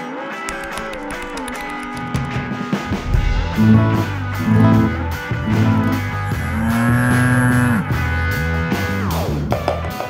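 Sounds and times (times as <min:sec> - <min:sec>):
guitar rock music: 0:00.1 - 0:10.0.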